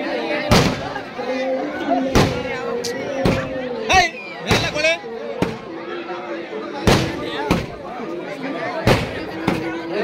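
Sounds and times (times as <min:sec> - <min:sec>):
crowd talking: 0:00.0 - 0:10.0
firecrackers banging: 0:00.5 - 0:01.0, 0:02.0 - 0:02.6, 0:06.8 - 0:07.8, 0:08.9 - 0:09.8.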